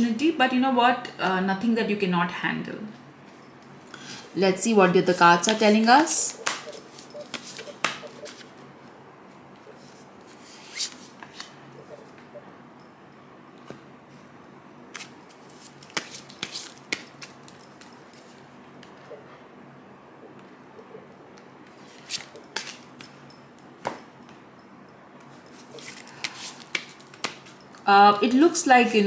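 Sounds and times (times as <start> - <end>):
cards being shuffled: 5.5 - 8.6, 9.8 - 11.6, 14.9 - 17.6, 21.8 - 22.8, 25.5 - 27.6.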